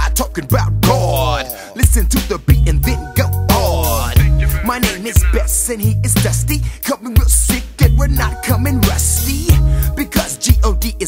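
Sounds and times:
hip hop beat with deep bass: 0.0s - 11.0s.

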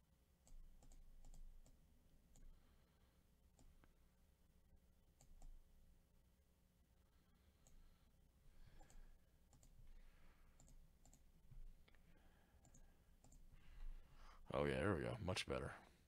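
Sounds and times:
soft clicks: 8.8s - 9.8s, 10.6s - 12.0s.

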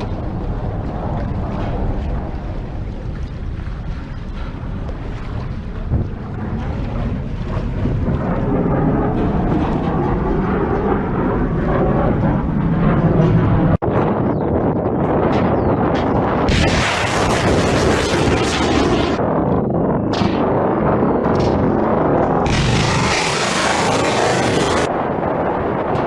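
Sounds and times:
steady rumbling noise: 0.0s - 26.0s
missile launch roar: 16.4s - 19.2s, 21.6s - 25.2s.

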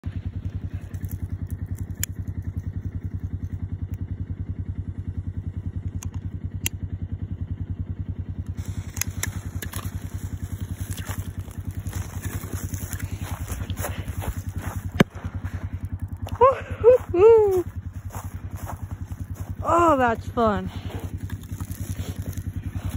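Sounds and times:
low rhythmic drone: 0.0s - 22.9s
clicks and crackles: 0.3s - 4.1s, 8.4s - 16.4s, 21.1s - 22.9s.

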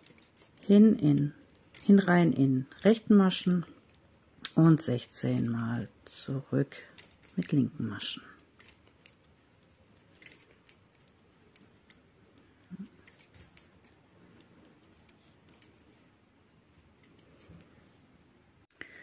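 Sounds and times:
metal knitting needles clicking: 0.0s - 16.1s, 16.8s - 18.4s.

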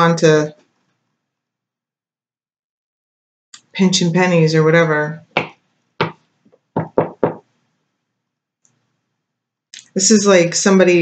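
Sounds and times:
card deck tapped on table: 5.4s - 6.2s.

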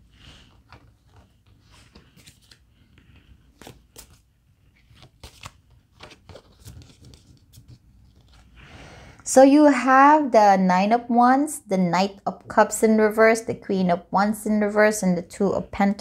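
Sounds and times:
cards tapping and rustling: 4.9s - 8.4s.

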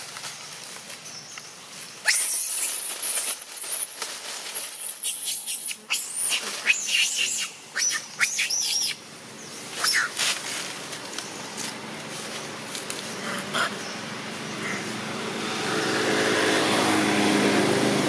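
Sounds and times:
monkey short sharp cries: 2.0s - 2.9s, 5.0s - 9.0s, 9.8s - 10.2s
monkey high-pitched squeal: 2.0s - 9.0s, 9.7s - 10.2s.

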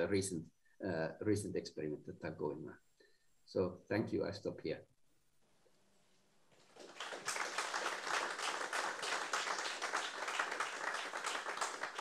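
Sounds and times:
audience applauding: 6.6s - 12.0s.

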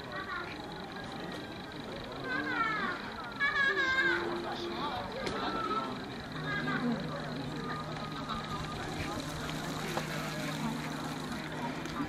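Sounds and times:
crowd babble: 0.0s - 12.0s
steady low hum: 0.0s - 12.0s.

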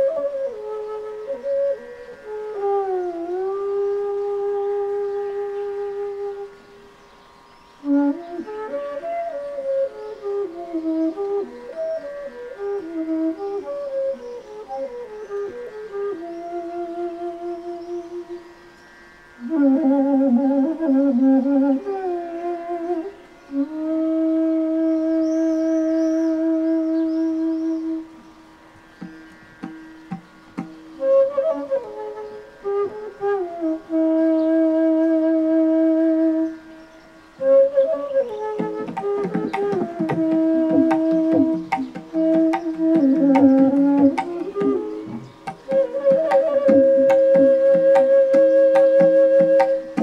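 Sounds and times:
bamboo flute long low note: 0.0s - 50.0s
small bird chirping: 40.8s - 45.8s.

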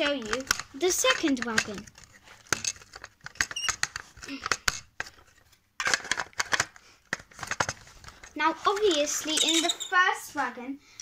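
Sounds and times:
plastic pieces clicking: 0.0s - 9.9s.

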